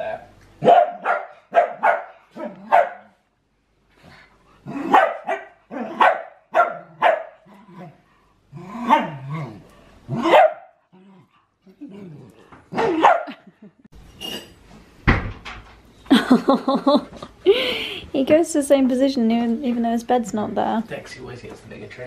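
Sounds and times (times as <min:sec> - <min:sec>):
small dogs barking: 0:00.6 - 0:03.2, 0:04.7 - 0:07.6, 0:08.8 - 0:09.3, 0:10.1 - 0:10.8, 0:12.8 - 0:13.4.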